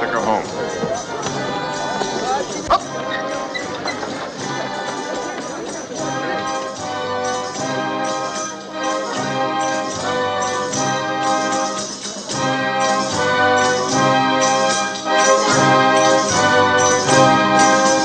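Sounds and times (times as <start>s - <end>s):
orchestral music: 0.0s - 18.0s
brass playing held chords: 5.9s - 18.0s.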